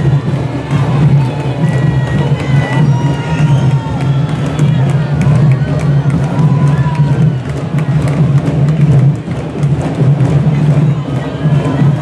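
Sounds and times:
marching drum line: 0.0 - 12.0.

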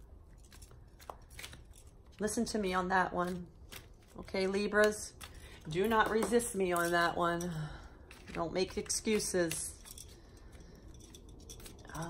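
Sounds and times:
cards being shuffled: 0.4 - 7.2, 8.0 - 10.2.

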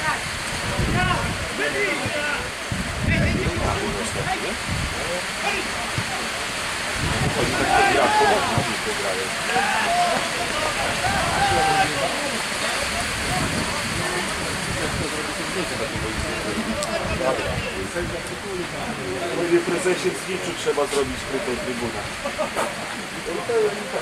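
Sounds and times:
wind on microphone: 0.0 - 5.2, 5.8 - 8.8, 12.8 - 18.4
voices shouting: 7.2 - 13.9.

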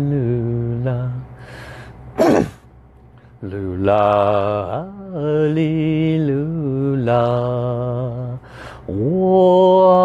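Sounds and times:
man clearing throat: 2.2 - 2.6.

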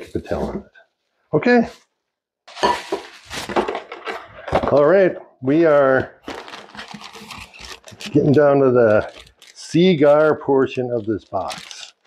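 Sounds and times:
knocking and handling noise: 2.5 - 5.3.

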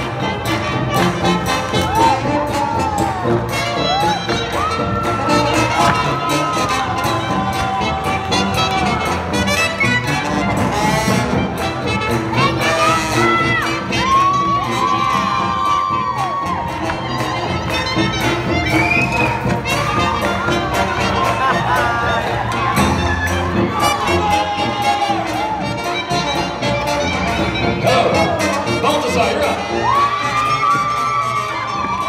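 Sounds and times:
jazz band playing swing: 0.0 - 15.0, 16.7 - 29.6
crowd cheering: 1.4 - 27.5, 28.3 - 32.0.

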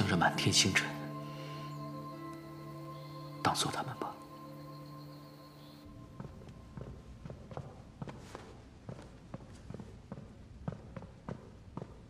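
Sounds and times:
footsteps on wooden floor: 5.9 - 12.0.

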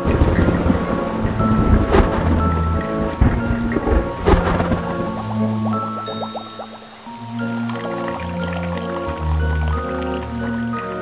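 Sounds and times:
loud thunder cracks: 0.0 - 5.7
thunder: 0.0 - 6.3
music with held notes: 0.0 - 11.0
rain: 0.0 - 11.0.

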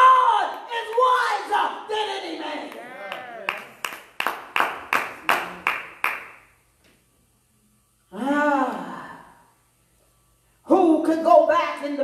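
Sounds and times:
hand claps: 2.7 - 6.5.

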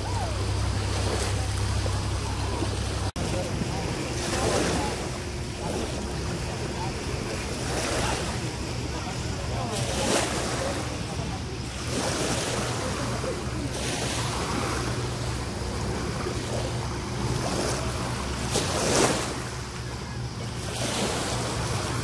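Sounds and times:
small waves on pebbly shore: 0.0 - 22.0.

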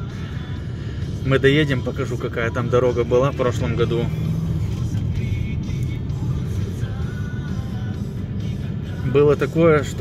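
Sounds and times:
car engine and road noise: 0.0 - 10.0
music playing: 0.0 - 10.0.

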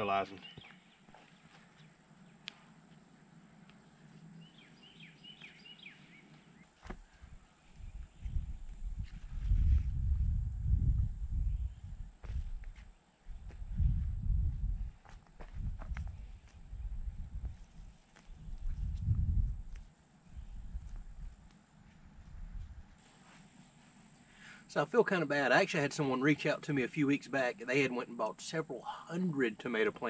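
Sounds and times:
bird chirps: 0.2 - 2.4, 3.8 - 6.8
wind gusting on microphone: 7.0 - 23.0.

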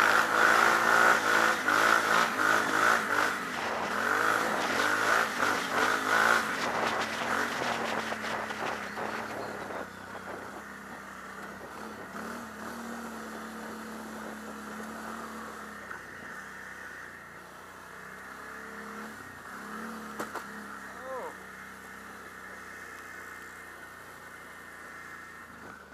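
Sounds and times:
atv engine running: 0.0 - 25.9.

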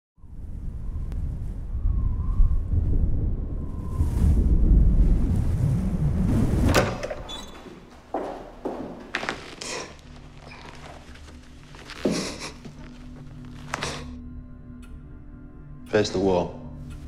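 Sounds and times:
wind noise: 0.2 - 7.6.

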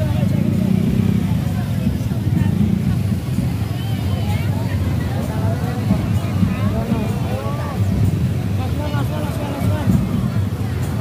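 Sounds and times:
people calling and talking: 0.0 - 11.0
scooter engines droning: 0.0 - 11.0.

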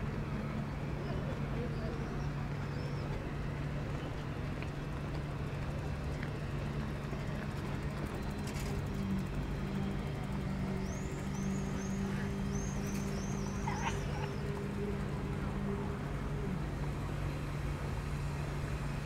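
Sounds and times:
low engine hum: 0.0 - 19.0
waterfront ambience: 0.0 - 19.0.

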